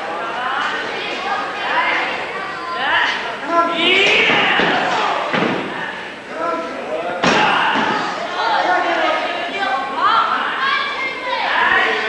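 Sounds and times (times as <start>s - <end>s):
spectators shouting: 0.0s - 12.0s.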